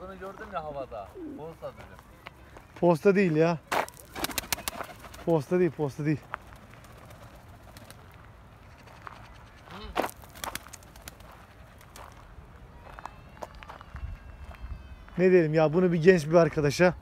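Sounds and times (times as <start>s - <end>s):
pigeons wings flapping: 3.8s - 8.2s, 10.0s - 12.0s.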